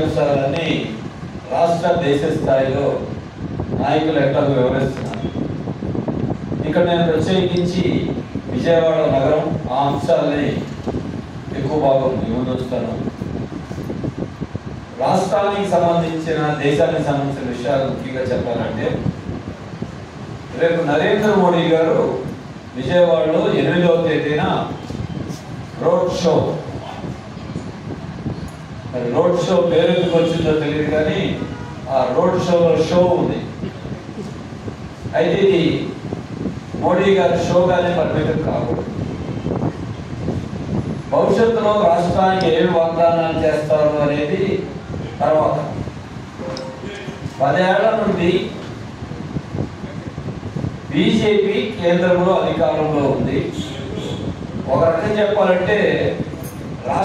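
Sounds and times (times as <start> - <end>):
air rumble on microphone: 0.0 - 57.0
microphone handling noise: 4.7 - 8.7, 10.4 - 14.9, 24.6 - 28.9, 33.2 - 35.1, 44.9 - 47.5.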